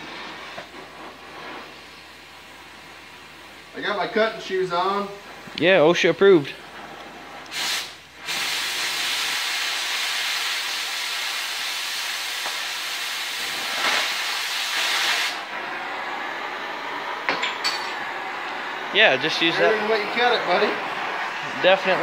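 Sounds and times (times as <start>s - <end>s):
cutting torch hissing: 0.0s - 22.0s.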